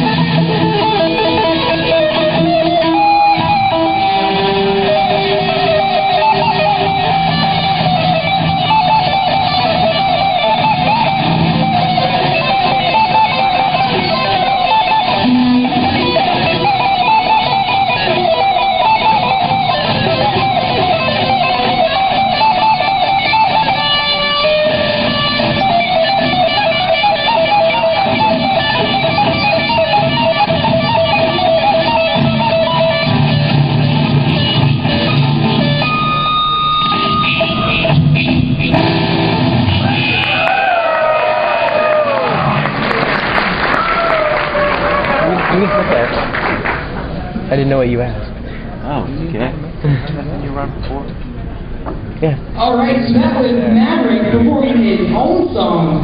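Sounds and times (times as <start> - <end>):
electric guitar playing: 0.0 - 48.5, 50.6 - 56.0.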